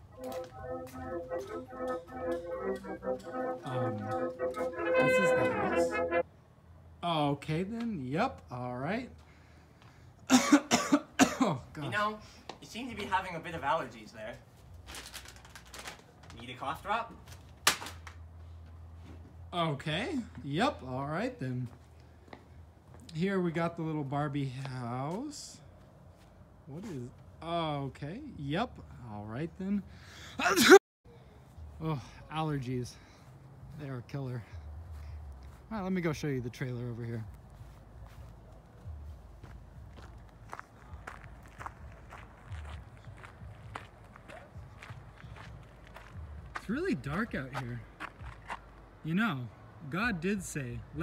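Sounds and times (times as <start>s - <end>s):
faint footsteps outdoors: 0.0s - 29.8s, 31.1s - 51.0s
sharp crack: 17.6s - 18.2s.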